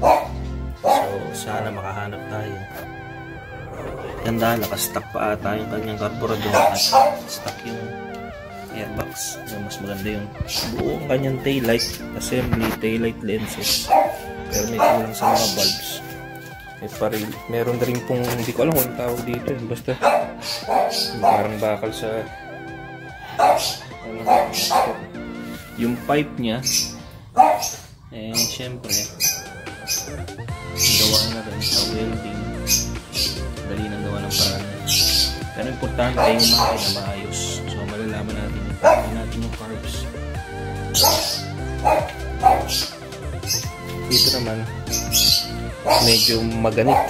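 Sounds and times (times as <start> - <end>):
dog barking: 0.0 - 1.4, 6.4 - 7.4, 13.6 - 15.9, 20.0 - 21.6, 23.2 - 25.1, 27.4 - 28.0, 36.1 - 37.0, 38.8 - 39.2, 40.9 - 43.6, 45.2 - 47.0
background music: 0.0 - 47.0.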